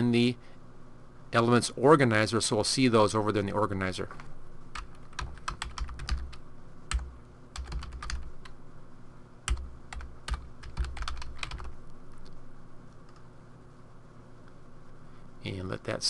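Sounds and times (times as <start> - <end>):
computer keyboard typing: 4.7 - 8.6, 9.5 - 12.3.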